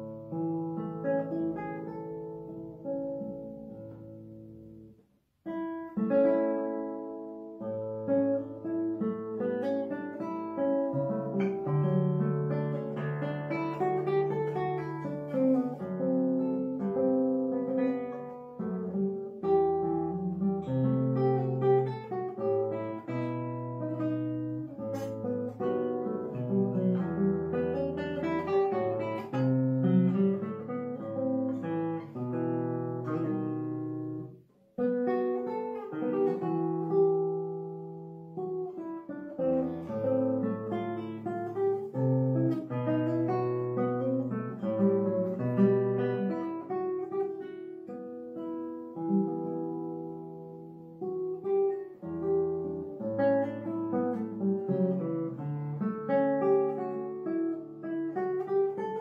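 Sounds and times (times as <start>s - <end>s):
classical guitar fingerstyle: 0.0s - 59.0s.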